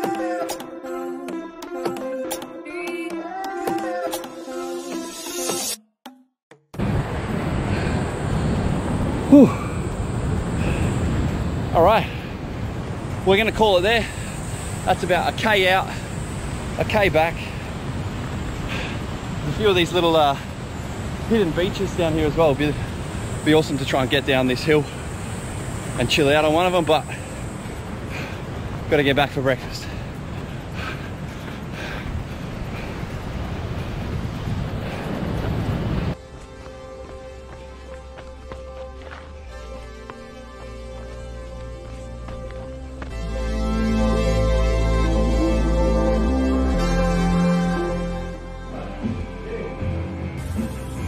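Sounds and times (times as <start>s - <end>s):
wind buffeting microphone: 6.8s - 36.6s.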